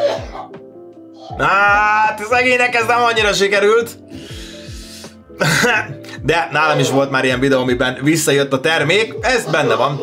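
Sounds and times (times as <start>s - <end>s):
person coughing hard: 0.0s - 0.6s, 5.4s - 6.1s
quiet background music: 0.0s - 10.0s.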